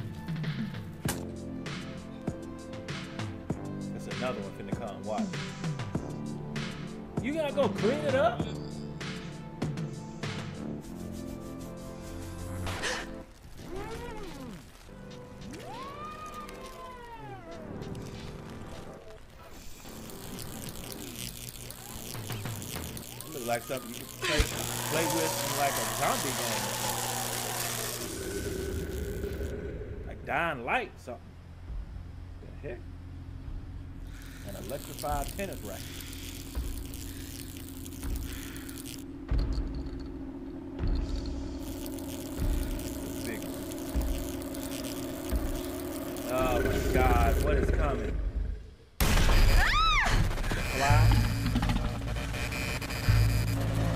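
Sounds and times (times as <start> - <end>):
harsh high hiss with crackles: 7.8 - 31.1, 34.1 - 39.3, 40.8 - 47.6, 49.0 - 53.9
steady low hum: 18.4 - 49.2.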